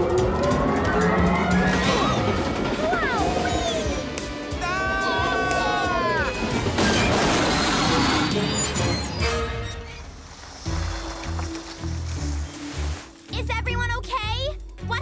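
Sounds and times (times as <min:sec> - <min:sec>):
background music with low bass: 0:10.7 - 0:15.0.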